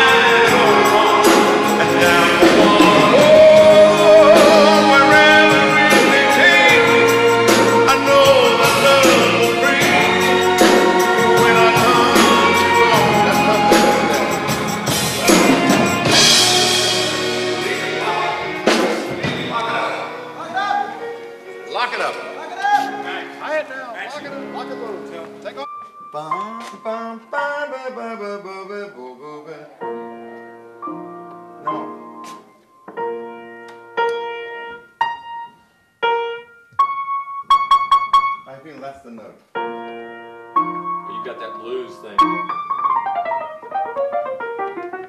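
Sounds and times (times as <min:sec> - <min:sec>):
live band playing: 0:00.0 - 0:26.8, 0:39.5 - 0:45.0
piano chords ringing: 0:00.0 - 0:28.9, 0:29.7 - 0:45.0
cymbal crash: 0:10.6 - 0:20.3
person speaking: 0:19.2 - 0:25.8.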